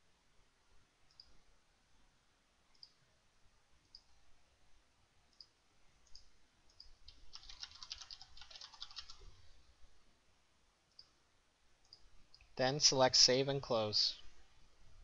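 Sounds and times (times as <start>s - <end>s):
computer mouse clicks: 1.1s - 1.4s, 2.7s - 3.0s, 5.3s - 9.2s
typing on computer keyboard: 7.1s - 9.3s.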